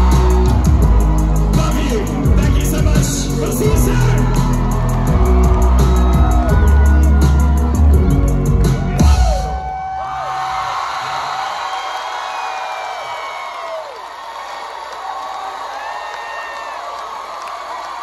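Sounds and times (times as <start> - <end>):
crowd cheering and screaming: 0.0 - 18.0.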